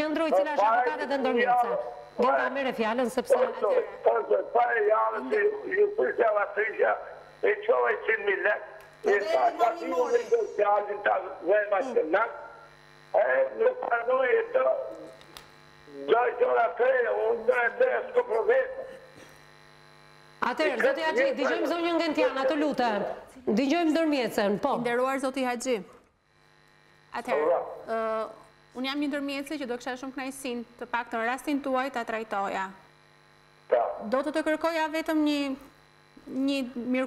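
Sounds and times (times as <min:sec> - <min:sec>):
woman speaking: 0:00.0 - 0:04.0, 0:09.1 - 0:10.4, 0:20.4 - 0:25.9, 0:27.2 - 0:32.8, 0:36.3 - 0:37.0
steady electrical hum: 0:00.0 - 0:37.0
voice over telephone line: 0:00.2 - 0:12.4, 0:13.2 - 0:15.1, 0:15.9 - 0:18.9.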